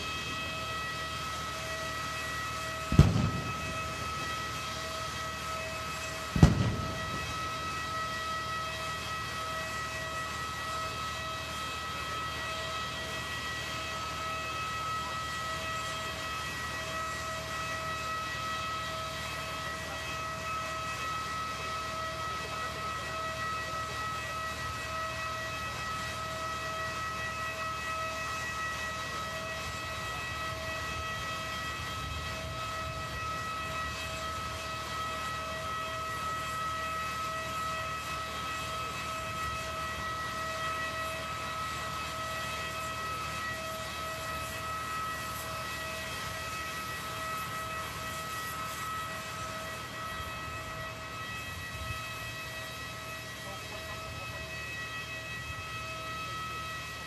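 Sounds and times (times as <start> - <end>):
jet airliner engine whine: 0.0 - 57.0.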